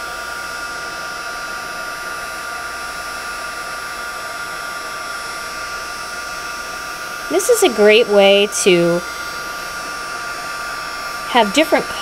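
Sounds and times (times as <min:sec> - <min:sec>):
heat tool blower hiss: 0:00.0 - 0:12.0.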